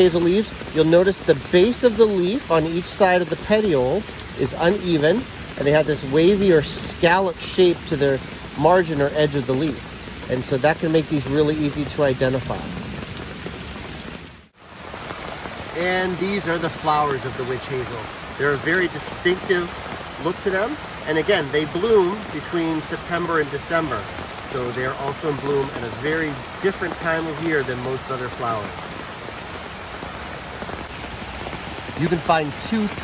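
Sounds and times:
rain falling on leaves: 0:00.0 - 0:33.0.

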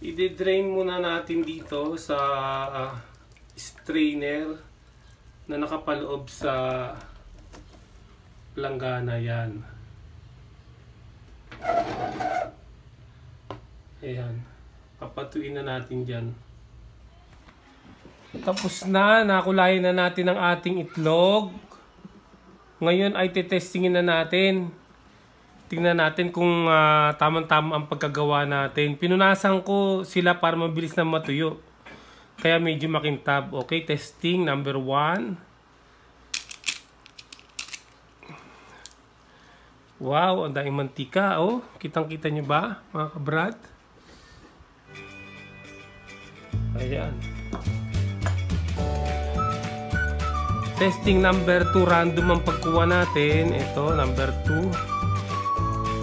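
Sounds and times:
knife cracking egg shell: 0:36.3 - 0:38.0.

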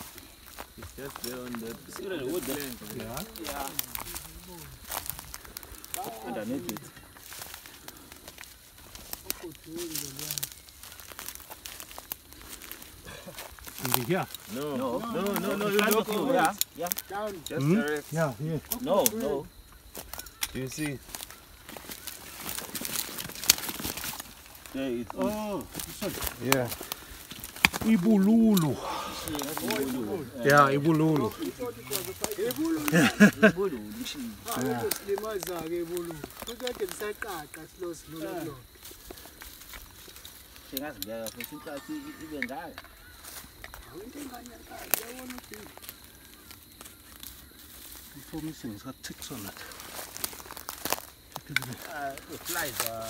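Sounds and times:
footsteps through dry grass: 0:00.0 - 0:53.0
people talking: 0:00.8 - 0:04.8, 0:05.9 - 0:07.0, 0:09.2 - 0:10.5, 0:13.1 - 0:19.5, 0:20.5 - 0:21.0, 0:24.7 - 0:26.8, 0:27.7 - 0:38.6, 0:40.7 - 0:42.8, 0:43.8 - 0:45.7, 0:48.1 - 0:49.7, 0:51.4 - 0:53.0
brittle vegetation snapping: 0:02.3 - 0:19.3, 0:19.9 - 0:33.1, 0:34.4 - 0:37.6, 0:38.8 - 0:48.0, 0:49.7 - 0:53.0.

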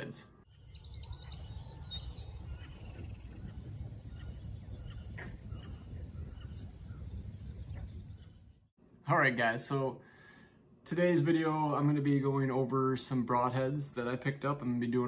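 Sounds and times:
bird chirps: 0:00.4 - 0:08.7
insects trilling: 0:00.6 - 0:08.7.

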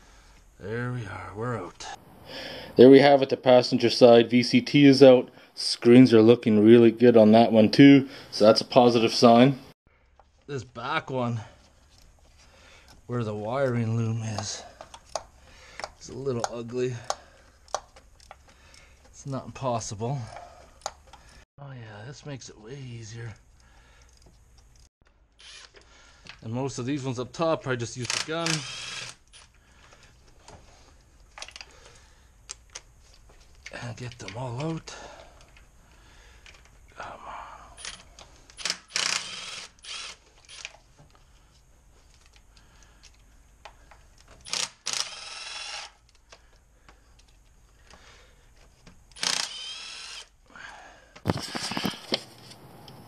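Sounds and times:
impact wrench spinning bolts: 0:25.4 - 0:25.8, 0:28.1 - 0:29.5, 0:37.8 - 0:40.8, 0:44.4 - 0:46.1, 0:49.1 - 0:50.3.

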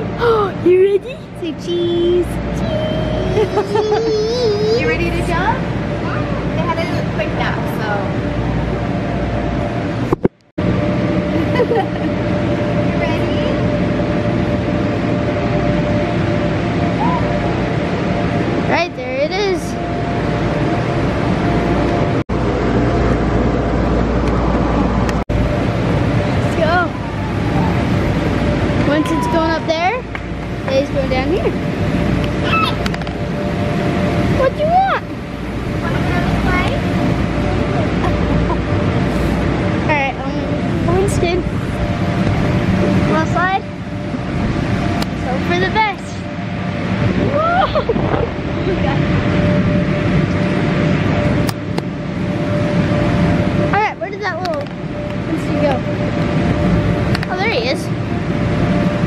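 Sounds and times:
air blower rumble: 0:00.0 - 0:59.0
faint constant hum: 0:00.0 - 0:59.0
child calling: 0:02.5 - 0:05.0, 0:28.9 - 0:30.0, 0:32.4 - 0:32.8
children calling and squealing: 0:28.8 - 0:30.1, 0:32.4 - 0:32.8.

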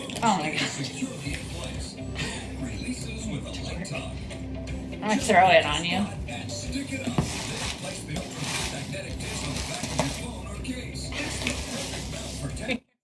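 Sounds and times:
hands rummaging in shredded paper: 0:07.2 - 0:10.4, 0:11.2 - 0:12.6.

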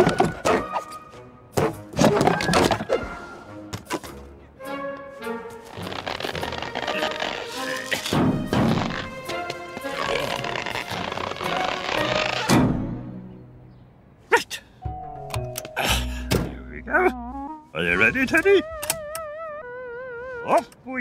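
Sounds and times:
cartoon background music: 0:00.0 - 0:13.4, 0:14.9 - 0:20.8.

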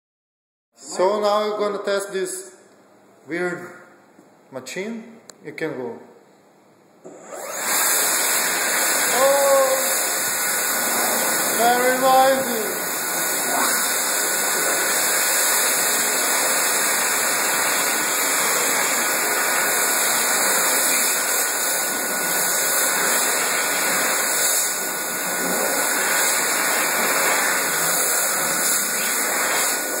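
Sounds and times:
hand dryer blowing air: 0:07.0 - 0:30.0.

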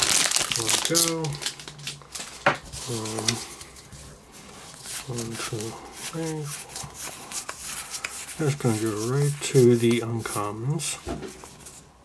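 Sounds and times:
cards rustling and clicking: 0:00.0 - 0:10.5.

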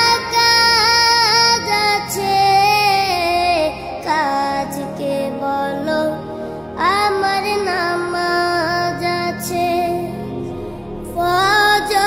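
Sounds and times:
soft steady musical backing: 0:00.0 - 0:12.0.

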